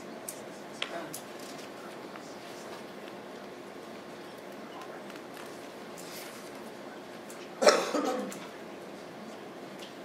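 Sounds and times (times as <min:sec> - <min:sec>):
room noise: 0:00.0 - 0:10.0
person coughing: 0:07.6 - 0:08.4.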